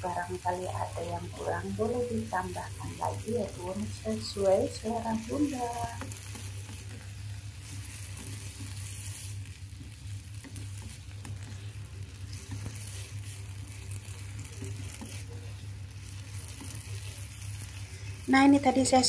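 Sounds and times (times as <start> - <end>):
food sizzling in a frying pan: 0.0 - 19.0
steady low hum: 0.0 - 19.0
wooden spatula scraping: 0.0 - 19.0.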